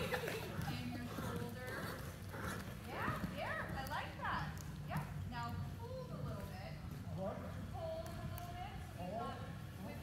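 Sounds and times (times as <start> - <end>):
horse hoofbeats on soft footing: 0.0 - 8.9.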